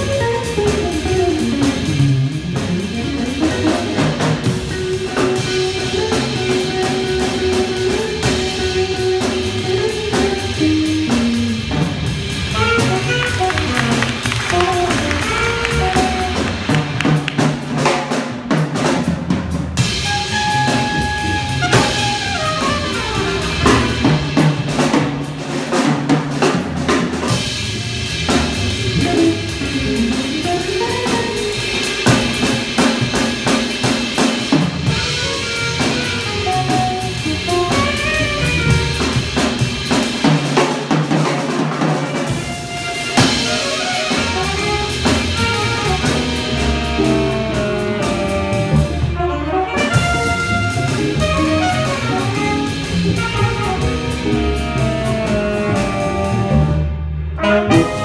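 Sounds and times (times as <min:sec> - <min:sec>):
drum kit: 0:00.0 - 0:58.0
jazz combo playing: 0:00.0 - 0:58.0.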